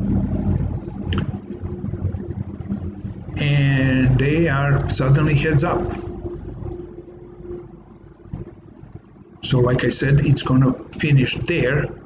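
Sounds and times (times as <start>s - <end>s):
low rumbling background noise: 0.0s - 12.0s
steady low hum: 0.0s - 12.0s.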